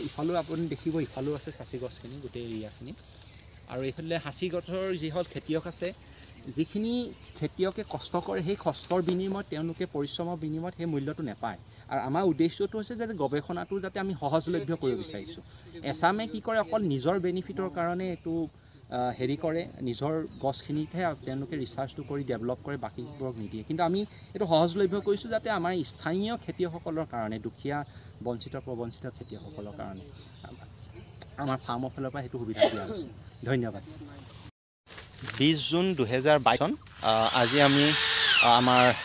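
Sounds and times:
man speaking: 0.0 - 3.0, 3.7 - 30.7, 31.4 - 34.2
man talking: 0.0 - 3.0, 3.6 - 30.7, 31.4 - 34.2, 35.3 - 39.0
insect chirring: 0.0 - 33.7, 34.9 - 39.0.

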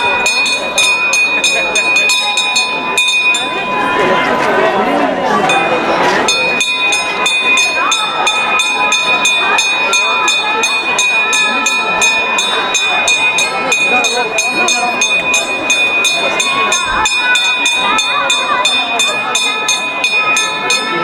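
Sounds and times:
metal bell ringing: 0.0 - 4.3, 5.4 - 21.0
crowd voices: 0.0 - 21.0.

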